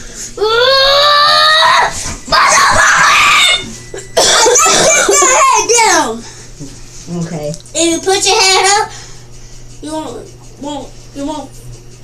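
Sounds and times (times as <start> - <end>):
child screaming: 0.4 - 3.7, 4.5 - 6.0.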